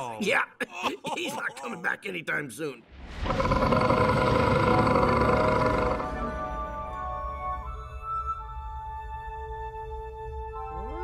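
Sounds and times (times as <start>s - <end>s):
loud roaring rumble: 3.2s - 6.4s
soft ambient music: 4.4s - 11.0s.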